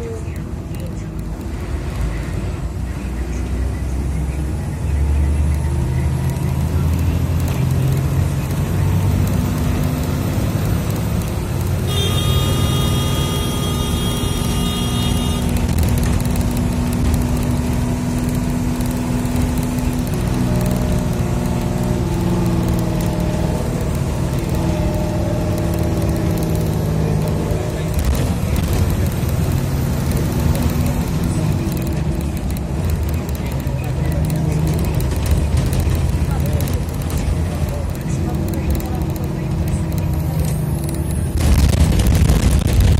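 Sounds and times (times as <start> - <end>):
vehicle engine and road rumble: 0.0 - 42.9
high-pitched vehicle horn: 11.8 - 15.7.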